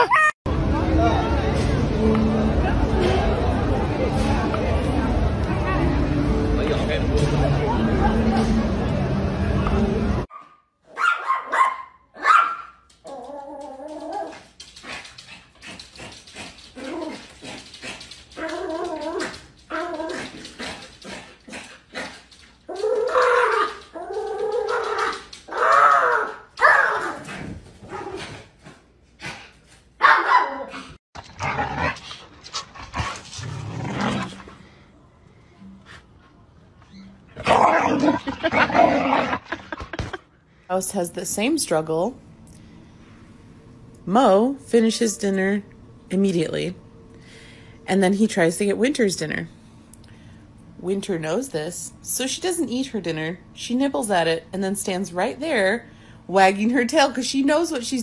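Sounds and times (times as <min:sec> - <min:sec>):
dogs barking and whining: 0:00.0 - 0:00.4, 0:10.3 - 0:28.5, 0:30.0 - 0:32.0.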